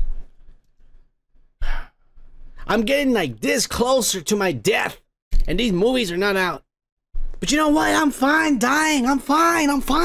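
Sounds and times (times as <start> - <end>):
man sighing: 1.6 - 2.0.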